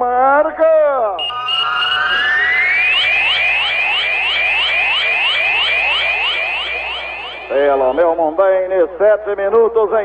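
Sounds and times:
short rising chirps: 1.2s - 4.4s
upward gliding tone: 1.2s - 8.2s
steady high beep: 1.2s - 8.4s.

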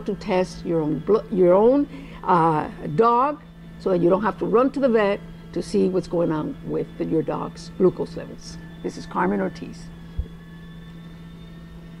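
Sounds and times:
low hum and rumble: 0.0s - 12.0s.

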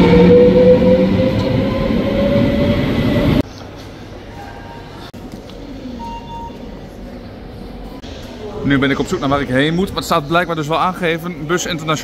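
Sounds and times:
electric train rumbling and whining: 0.0s - 3.4s.

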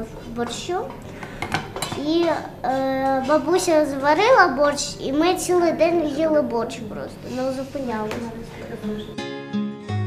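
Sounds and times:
clinks of dishes and cutlery: 1.2s - 2.0s
person speaking: 2.1s - 9.2s.

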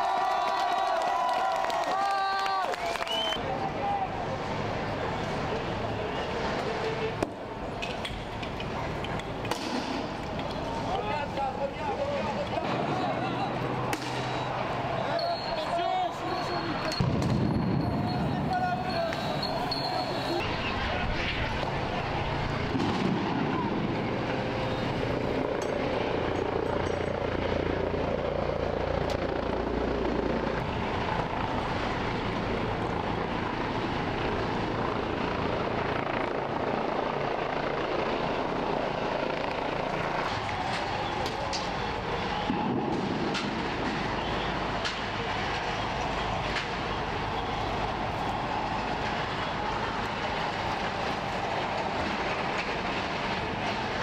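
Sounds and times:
crowd shouting: 0.0s - 4.2s, 12.2s - 21.1s, 45.8s - 51.7s
steady engine drone: 2.8s - 54.0s.

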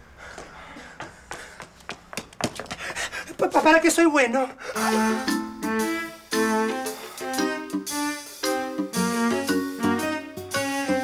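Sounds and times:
quick light footsteps: 0.2s - 3.8s.

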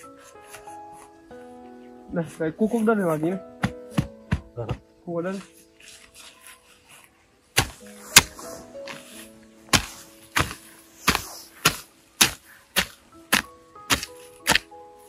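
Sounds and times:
background music: 0.0s - 15.0s
hoe chopping into soil: 3.6s - 4.8s, 7.6s - 9.0s, 9.7s - 14.7s.

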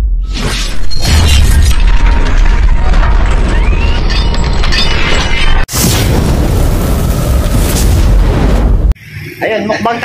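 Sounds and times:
loud crash with deep rumble: 5.7s - 9.0s.

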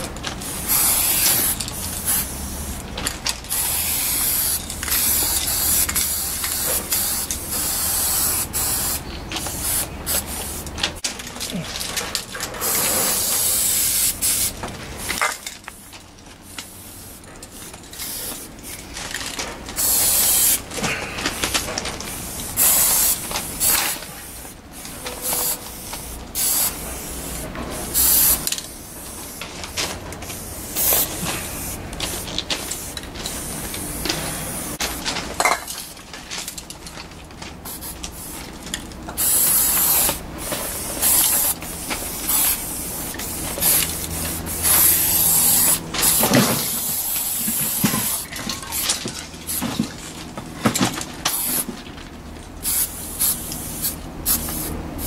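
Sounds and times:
handling sounds: 0.0s - 54.7s
spray paint cans hissing: 0.0s - 55.0s.

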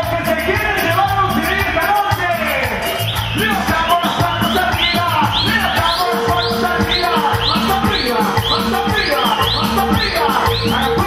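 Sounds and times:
live dance band music: 0.0s - 11.0s
high swooping chirp-like note: 2.9s - 11.0s
held tone: 3.1s - 11.0s.

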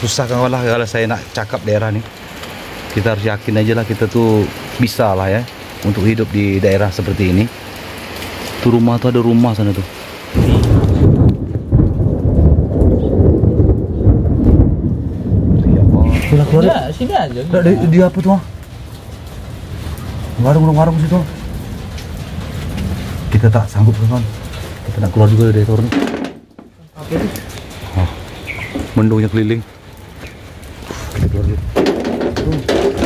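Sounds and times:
rain falling: 0.0s - 33.0s
thunder rumbling: 8.6s - 33.0s.

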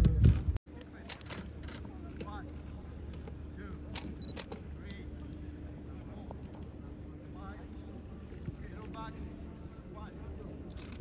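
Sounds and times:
distant voices of players: 0.7s - 11.0s
faint steady hum: 0.7s - 11.0s.

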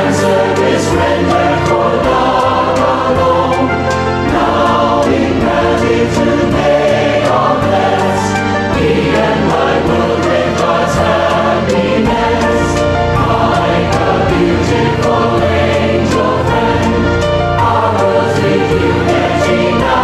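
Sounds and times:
choir singing a hymn: 0.0s - 20.0s.

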